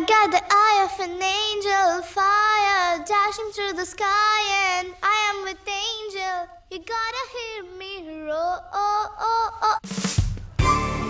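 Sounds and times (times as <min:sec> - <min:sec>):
child singing: 0:00.0 - 0:09.8.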